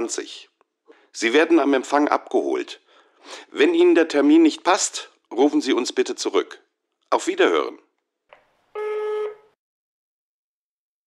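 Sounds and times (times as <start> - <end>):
answering machine beep: 8.8 - 9.4.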